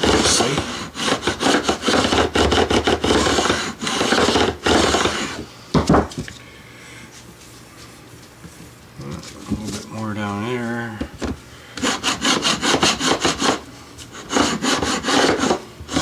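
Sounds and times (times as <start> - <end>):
file rasping on metal frets: 0.0 - 5.3, 11.8 - 16.0.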